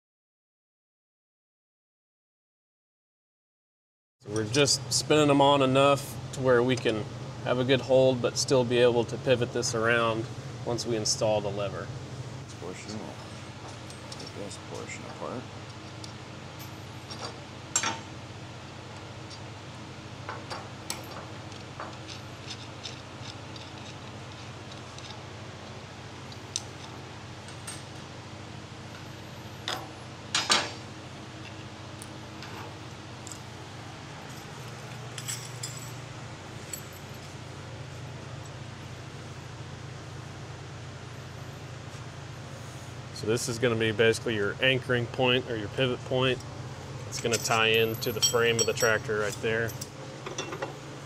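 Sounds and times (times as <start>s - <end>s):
steady low hum: 4.2s - 51.0s
metal hardware clinking on workbench: 34.2s - 36.0s, 47.1s - 50.8s.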